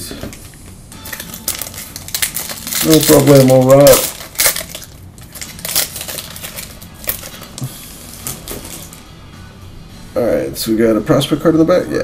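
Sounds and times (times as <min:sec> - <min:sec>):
packaging crinkling and crackling: 0:00.3 - 0:09.0.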